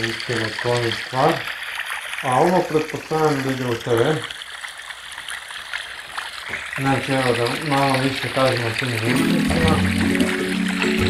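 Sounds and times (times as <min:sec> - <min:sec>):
water-like rushing from speakers: 0:00.0 - 0:11.0.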